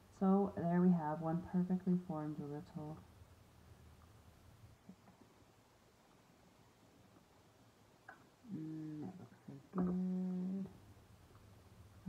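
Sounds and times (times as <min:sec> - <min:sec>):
woman humming: 0:08.5 - 0:10.8.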